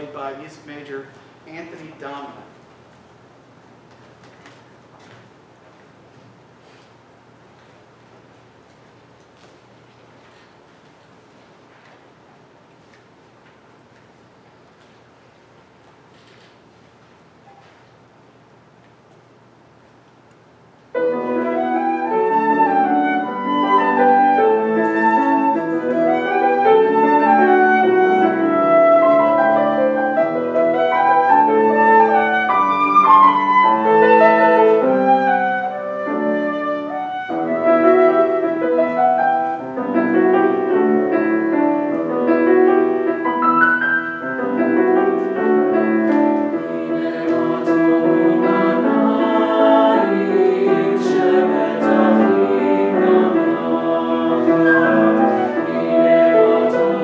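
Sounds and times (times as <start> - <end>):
piano: 20.6 - 57.0
flute: 21.0 - 40.2, 54.3 - 57.0.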